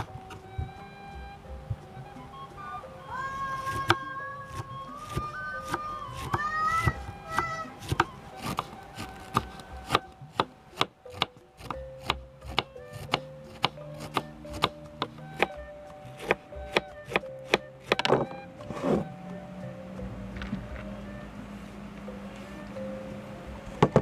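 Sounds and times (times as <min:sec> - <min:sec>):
knife slicing cabbage on board: 0:07.3 - 0:15.5.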